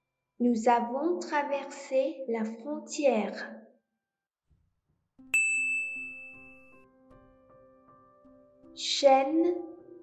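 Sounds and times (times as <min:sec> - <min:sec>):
soft background music: 0:00.3 - 0:03.5, 0:04.6 - 0:10.0
bright chime ding: 0:05.3 - 0:06.7.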